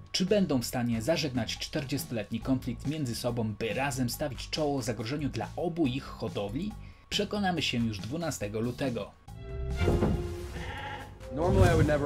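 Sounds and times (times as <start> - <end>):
trailer music: 9.3 - 12.0.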